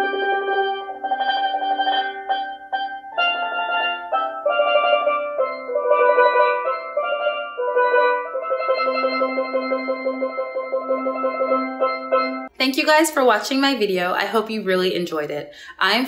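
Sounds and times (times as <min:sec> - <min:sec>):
steel pan melody with rolls: 0:00.0 - 0:12.5.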